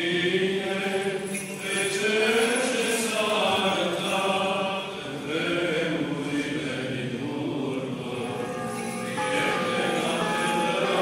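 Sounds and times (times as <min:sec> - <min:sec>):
group chanting a hymn: 0:00.0 - 0:11.0.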